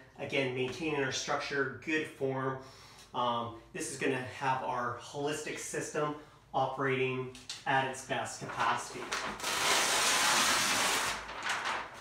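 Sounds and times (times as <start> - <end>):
paper sheet rustling: 8.4 - 12.0.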